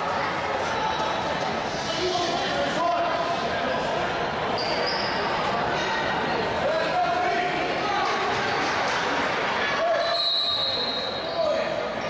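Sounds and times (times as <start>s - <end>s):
chatter and called-out voices: 0.0s - 12.0s.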